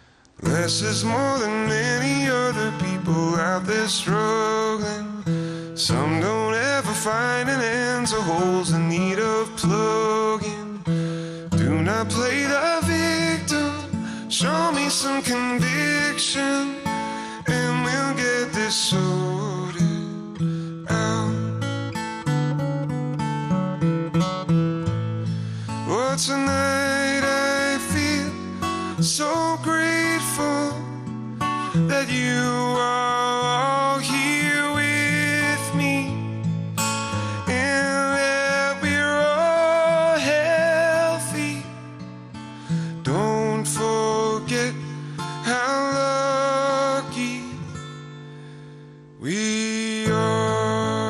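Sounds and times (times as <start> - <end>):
acoustic guitar strumming chords: 0.0 - 51.0
man singing: 0.4 - 21.6, 25.6 - 36.5, 37.1 - 41.9, 42.8 - 47.8, 49.2 - 51.0.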